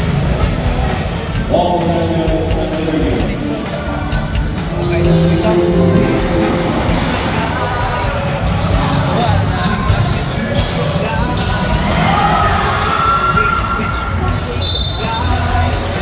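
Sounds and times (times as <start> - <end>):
spectators' voices echoing: 4.5 - 8.3.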